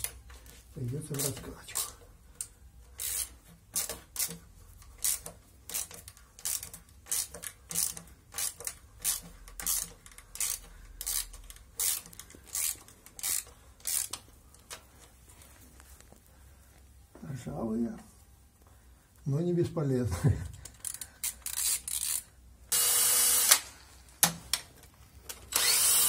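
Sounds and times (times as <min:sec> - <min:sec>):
ratchet wrench clicking: 0:01.1 - 0:14.8, 0:20.6 - 0:22.3, 0:25.5 - 0:26.0.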